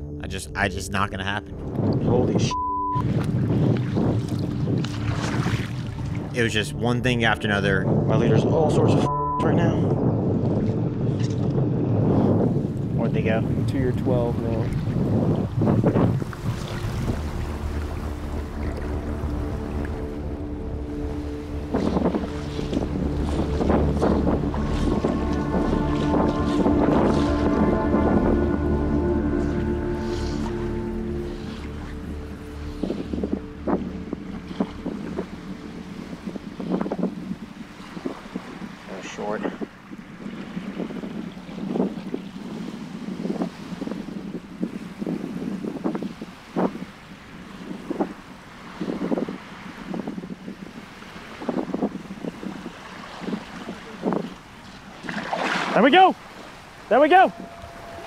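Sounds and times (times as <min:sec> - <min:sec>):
background music sustained chords: 0:00.0 - 0:39.2, 0:56.8 - 0:58.0
wind on microphone: 0:00.8 - 0:58.0
splashes of shallow water: 0:03.0 - 0:06.4, 0:16.1 - 0:20.3, 0:20.9 - 0:28.5, 0:52.2 - 0:58.0.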